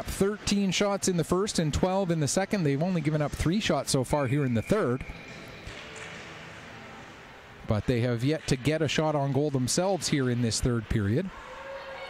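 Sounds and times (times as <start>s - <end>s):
knocks of sticks puck and skates: 5.3s - 6.4s.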